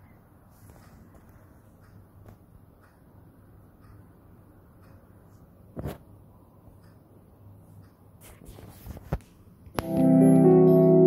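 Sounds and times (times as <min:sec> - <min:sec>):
faint knocks and shuffling: 0:00.4 - 0:02.5, 0:07.6 - 0:10.0
electric piano music from speaker: 0:09.8 - 0:11.0.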